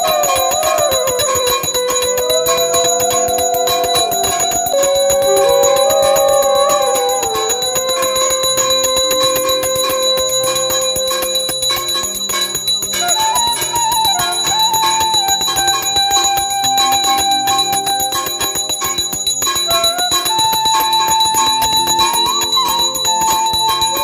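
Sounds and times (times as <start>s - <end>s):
brass hand bell ringing rapidly: 0.0s - 17.1s
devotional music with gliding melody: 0.0s - 24.0s.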